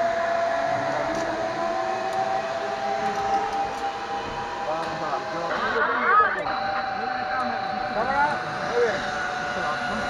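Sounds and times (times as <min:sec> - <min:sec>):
zipline pulleys whining on cable: 0:00.0 - 0:10.0.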